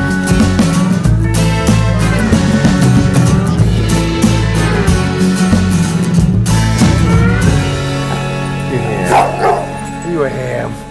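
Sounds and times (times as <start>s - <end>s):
background music with held notes: 0.0s - 10.9s
dog barking: 8.9s - 9.8s.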